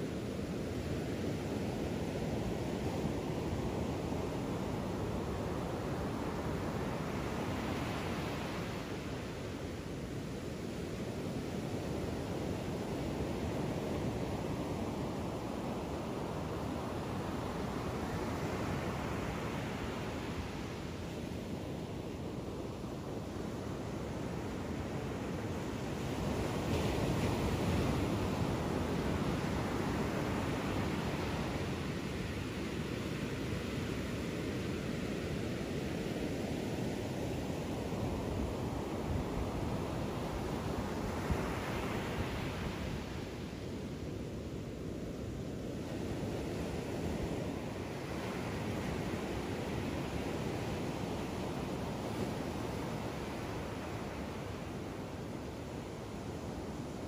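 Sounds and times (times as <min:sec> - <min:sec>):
ocean surf breaking on beach: 0:00.0 - 0:57.0.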